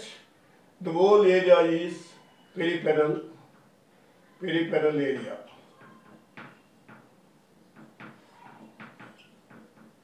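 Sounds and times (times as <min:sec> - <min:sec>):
marker writing on whiteboard: 0:05.0 - 0:10.0.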